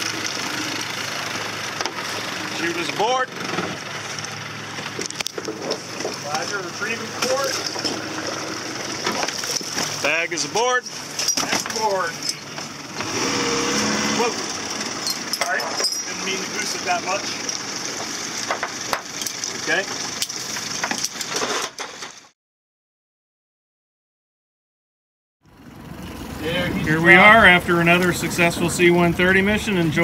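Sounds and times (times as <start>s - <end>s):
water rushing by boat hull: 0.0s - 14.8s
wind: 0.0s - 22.3s, 25.4s - 30.0s.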